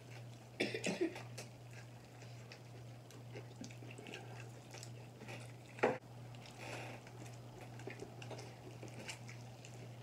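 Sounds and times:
person coughing: 0.6 - 1.3.

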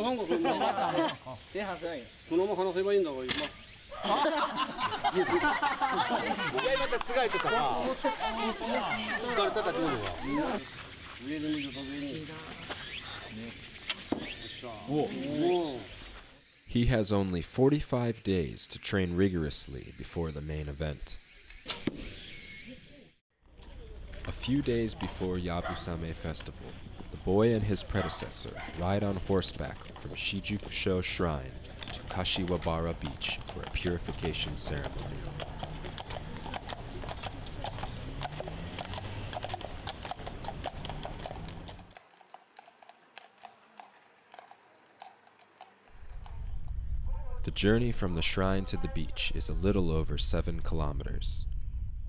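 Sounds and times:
people talking and laughing: 0.0 - 14.0, 14.6 - 18.0, 22.7 - 39.6
hooves clip-clopping on pavement: 4.9 - 14.4, 23.6 - 46.6.

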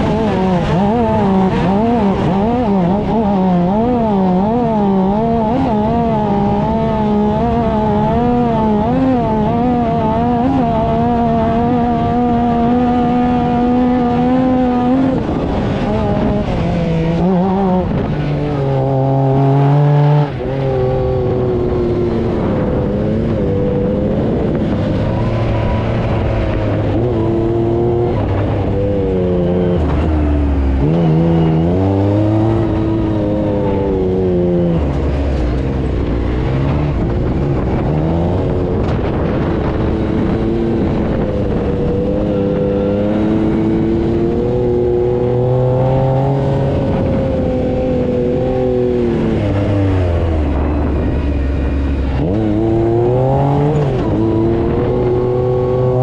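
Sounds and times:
utility vehicle engine revving: 0.0 - 56.0.

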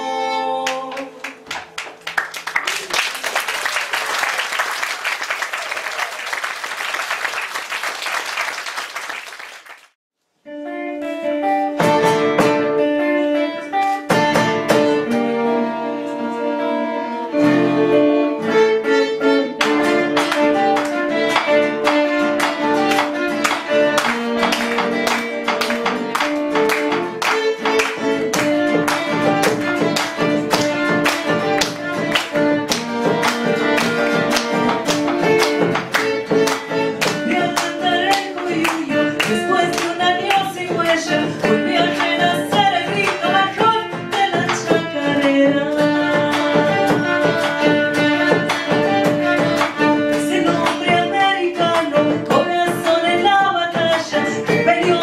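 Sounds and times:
violin: 0.0 - 1.3, 10.5 - 55.0
woman singing: 0.0 - 1.3, 37.0 - 48.5, 49.8 - 55.0
strummed guitar chords: 10.5 - 55.0
acoustic guitars picking: 10.8 - 55.0.

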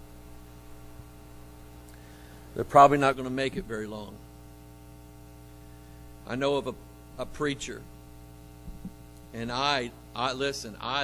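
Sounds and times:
electrical mains hum: 0.0 - 11.0
man's voice: 2.6 - 4.2, 6.3 - 7.8, 9.4 - 11.0.

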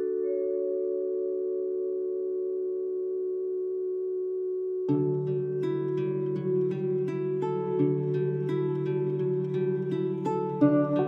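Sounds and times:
held chord of steady tones: 0.0 - 11.0
plucked notes: 4.9 - 11.0.

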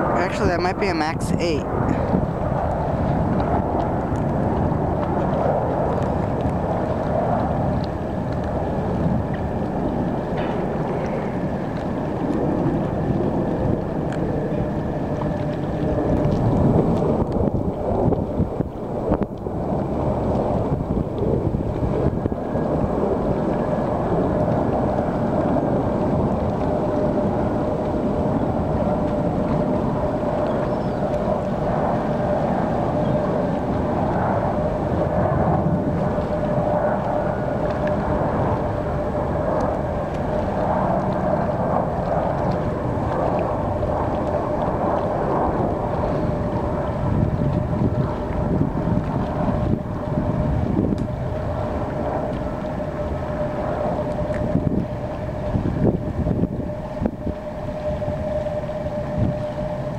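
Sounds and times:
jet engine drone with whine: 0.0 - 59.9
wind rumble on microphone: 0.0 - 59.9.

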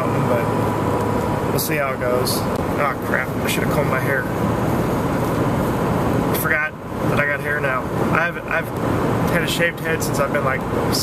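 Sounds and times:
car road and engine rumble: 0.0 - 11.0
man's voice: 1.6 - 4.3.

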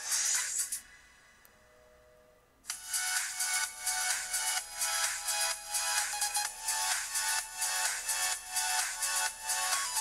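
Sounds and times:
electronic music with pulsing beat: 0.0 - 1.1, 2.6 - 10.0.

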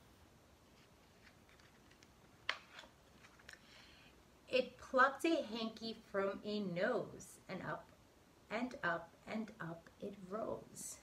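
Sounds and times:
book page turning: 0.7 - 3.7.

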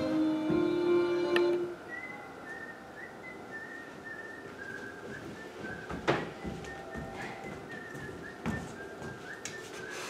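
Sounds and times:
person whistling a slow tune: 1.8 - 10.0.

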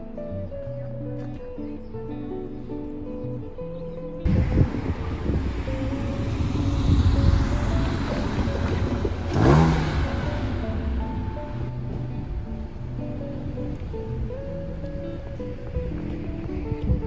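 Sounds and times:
background music: 0.0 - 17.0
street noise: 0.0 - 17.0
car passing by: 4.3 - 14.8.

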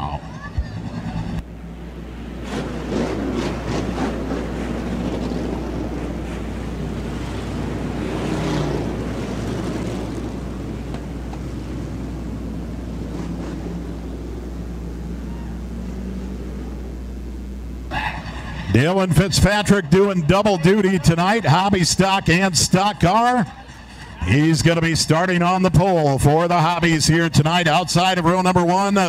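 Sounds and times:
race car engines rumbling: 0.0 - 29.0.

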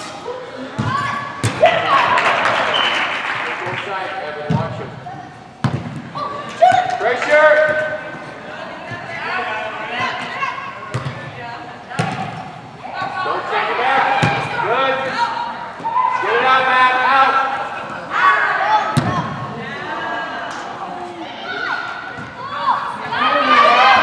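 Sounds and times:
voices shouting and cheering: 0.1 - 10.9, 11.6 - 24.0
ball kick thuds: 5.6 - 6.1, 10.9 - 11.3, 11.9 - 12.5.

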